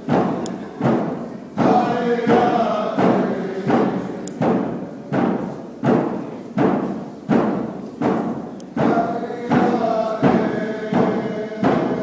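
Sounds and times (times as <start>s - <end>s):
drum beating with echo: 0.0s - 12.0s
group of voices singing: 1.6s - 4.8s, 8.7s - 12.0s.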